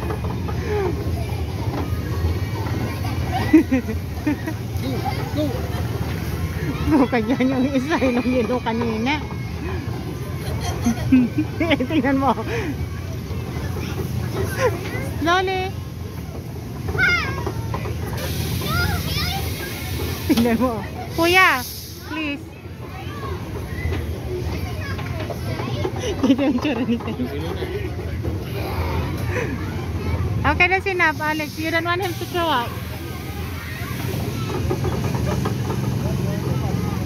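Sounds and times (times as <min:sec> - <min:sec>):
faint voices: 0:00.0 - 0:37.0
ride machinery humming: 0:00.0 - 0:37.0.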